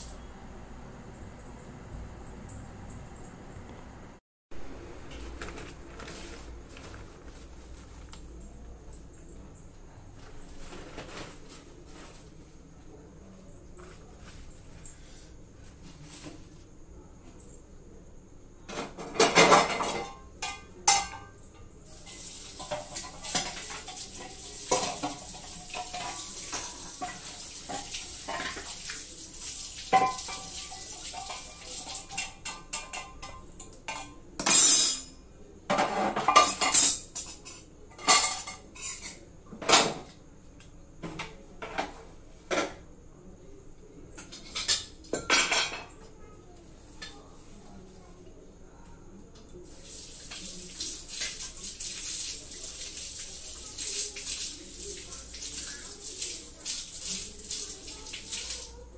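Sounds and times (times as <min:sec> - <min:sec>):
pots and utensils clattering: 0:05.0 - 0:08.1, 0:10.2 - 0:12.2, 0:18.7 - 0:40.1, 0:41.0 - 0:42.8, 0:44.2 - 0:46.0.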